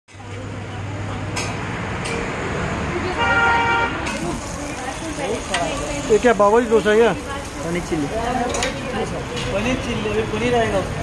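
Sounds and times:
street noise: 0:00.1 - 0:11.0
vehicle horn honking: 0:03.2 - 0:04.0.

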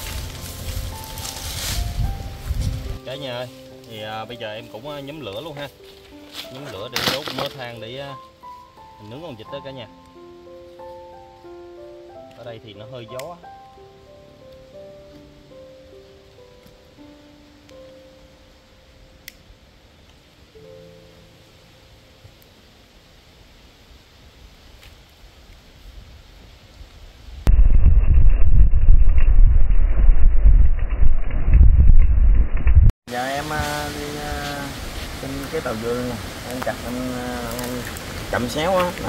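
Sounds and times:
wind buffeting microphone: 0:00.0 - 0:03.0, 0:27.3 - 0:32.9
soft background music: 0:00.0 - 0:23.0.

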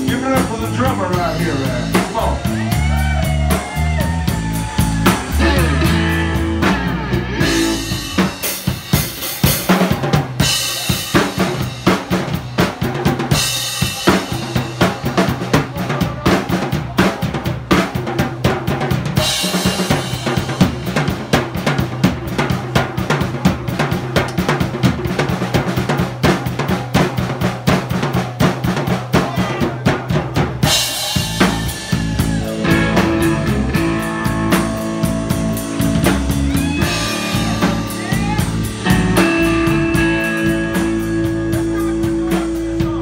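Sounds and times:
electric guitar sliding notes: 0:00.0 - 0:08.6, 0:30.7 - 0:43.0
bass guitar: 0:00.0 - 0:43.0
drum solo: 0:00.0 - 0:43.0.

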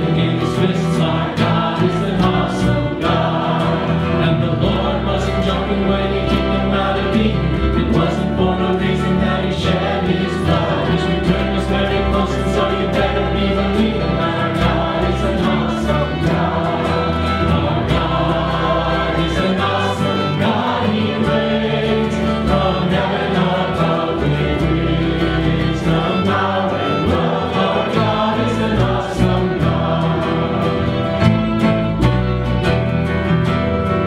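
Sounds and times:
man singing into a microphone: 0:00.0 - 0:17.7
guitar: 0:00.0 - 0:34.0
violin: 0:00.0 - 0:34.0.

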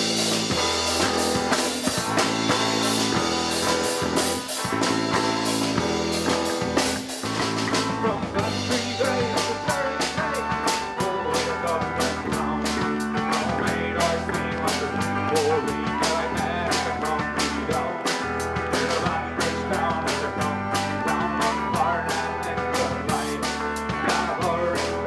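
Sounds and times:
drum kit beat: 0:00.0 - 0:25.0
electric bass: 0:00.0 - 0:25.0
electric guitar: 0:00.0 - 0:25.0.

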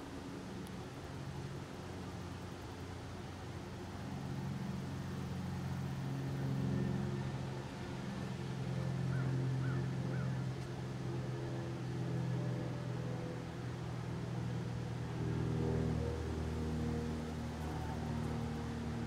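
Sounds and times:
low mechanical hum with tones: 0:00.0 - 0:19.0.

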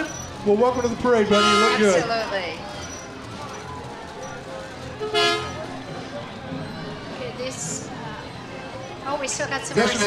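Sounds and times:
street and crowd background: 0:00.0 - 0:10.0
vehicle horn toot: 0:01.2 - 0:02.1, 0:05.0 - 0:05.6.

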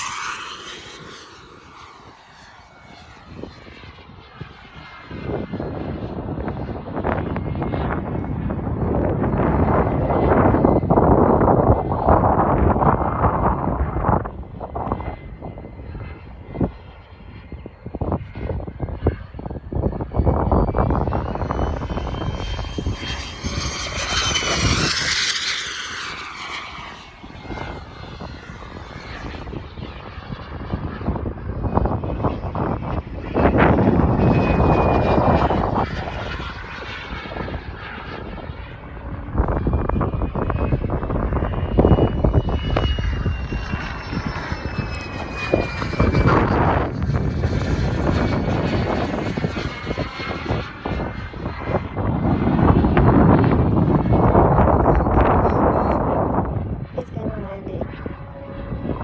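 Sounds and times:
jet turbine whining: 0:00.0 - 0:59.0
wind rumbling on microphone: 0:00.0 - 0:59.0.

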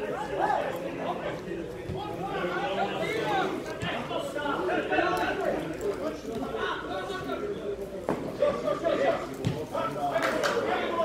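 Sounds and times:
babble of overlapping voices: 0:00.0 - 0:11.0.

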